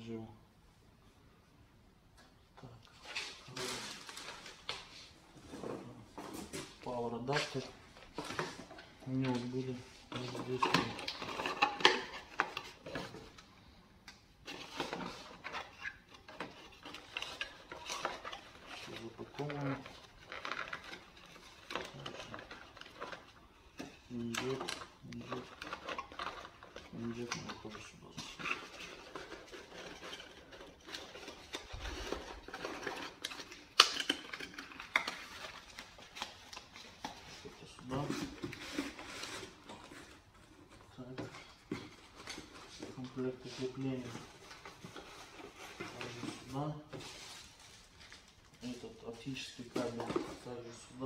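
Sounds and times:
rustling of plastic bags: 0:02.6 - 0:13.4, 0:14.4 - 0:51.0.

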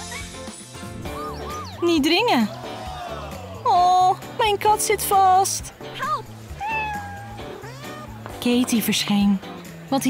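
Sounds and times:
background music: 0:00.0 - 0:10.0
cat meowing: 0:06.6 - 0:08.2.

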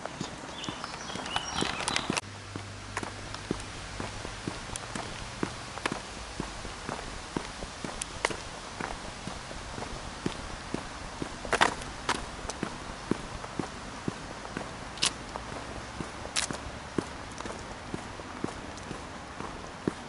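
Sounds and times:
footsteps on dry leaves: 0:00.0 - 0:20.0
leaves crackling: 0:00.0 - 0:20.0.

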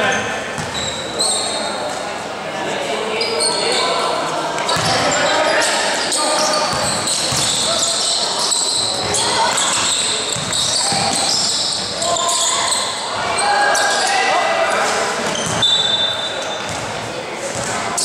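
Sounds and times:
sneakers squeaking on court: 0:00.0 - 0:02.0, 0:04.6 - 0:18.0
basketball bouncing: 0:00.6 - 0:00.8, 0:04.8 - 0:05.0, 0:06.7 - 0:07.7, 0:09.0 - 0:11.5, 0:15.2 - 0:15.6
people calling out: 0:04.8 - 0:15.0.

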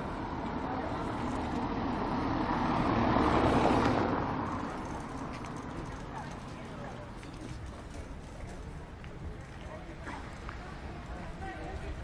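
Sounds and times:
car driving past: 0:00.0 - 0:05.6.

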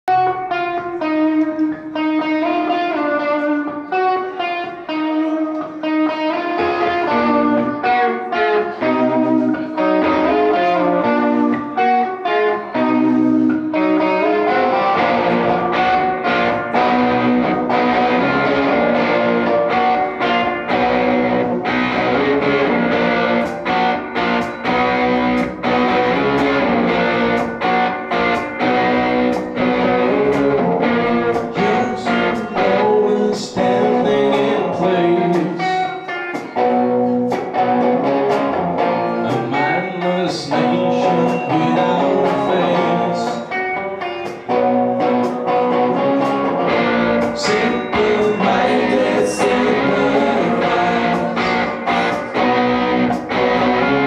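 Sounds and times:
clean picked guitar melody: 0:00.0 - 0:54.0
drums: 0:00.1 - 0:54.0
live rock band playing: 0:00.1 - 0:54.0.

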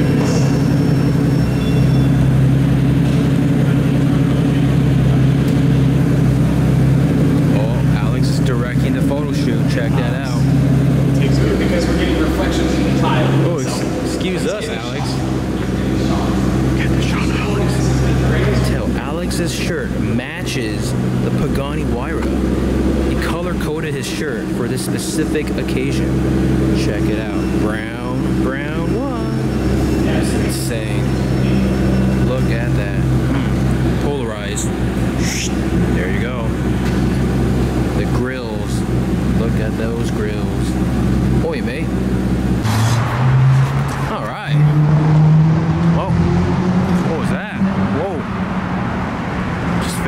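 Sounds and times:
people talking: 0:00.0 - 0:00.9, 0:07.4 - 0:42.0, 0:44.0 - 0:44.8, 0:45.9 - 0:46.3, 0:47.0 - 0:48.3, 0:49.8 - 0:50.0
car engine idling: 0:00.0 - 0:50.0.

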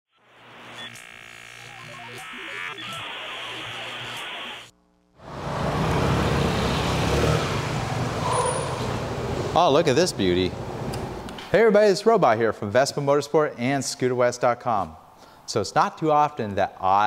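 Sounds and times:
electronic intro tune: 0:00.2 - 0:04.7.

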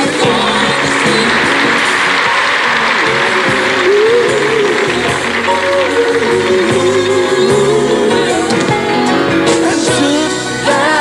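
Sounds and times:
audience applause: 0:00.0 - 0:08.9
gospel music: 0:00.0 - 0:11.0.

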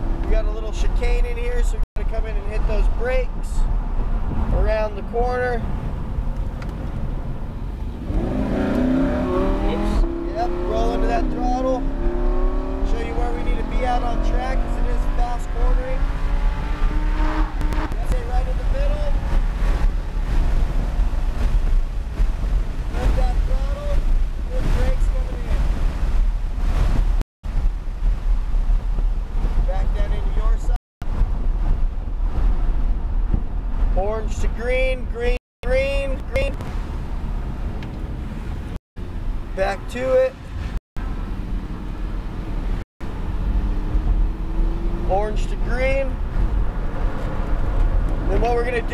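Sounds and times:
car engine accelerating: 0:07.7 - 0:23.3, 0:41.0 - 0:48.9.

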